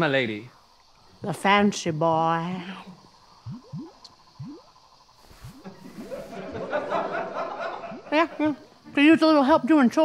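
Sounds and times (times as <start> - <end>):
audience laughter: 5.8 - 8.6.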